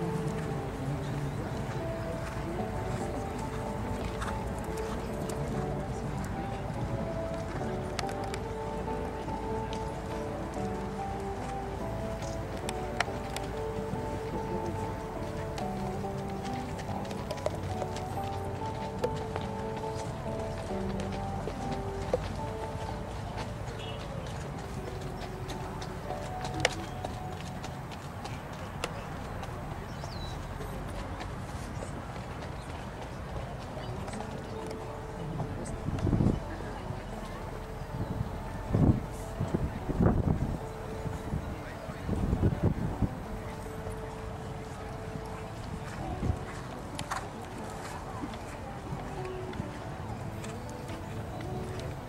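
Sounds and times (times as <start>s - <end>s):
background music with held notes: 0.0s - 52.0s
horse hoofbeats on arena footing: 0.0s - 52.0s.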